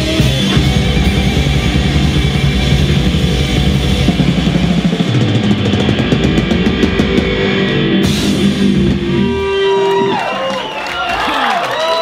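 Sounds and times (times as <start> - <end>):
live metal band playing: 0.0 - 10.7.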